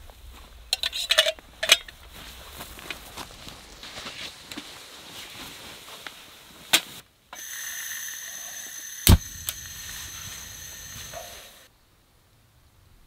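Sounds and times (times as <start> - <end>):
gas hissing with faint whistle: 7.4 - 11.7
burner lighting click and thump: 9.0 - 11.4.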